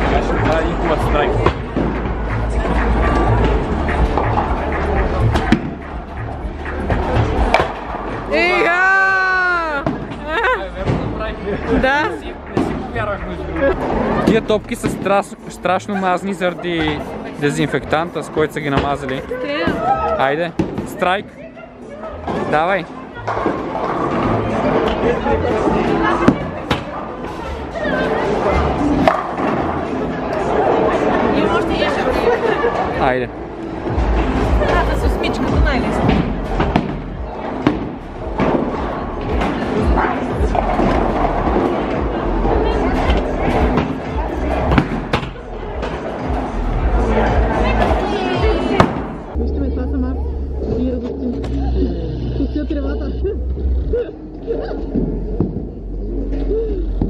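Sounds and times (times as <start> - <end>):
background music with faint beat: 0.0 - 19.1, 33.6 - 51.7
chatter echoing: 0.0 - 57.0.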